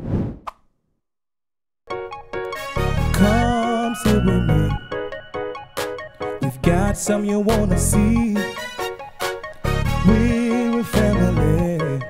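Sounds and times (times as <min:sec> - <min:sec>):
theme music: 0:01.9 - 0:11.6.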